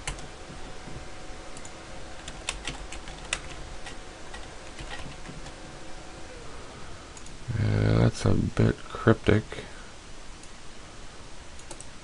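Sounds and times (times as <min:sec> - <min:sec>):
computer keyboard keys clicking: 0:00.0 - 0:00.3, 0:01.6 - 0:05.6, 0:11.6 - 0:11.9
person speaking: 0:07.5 - 0:09.9.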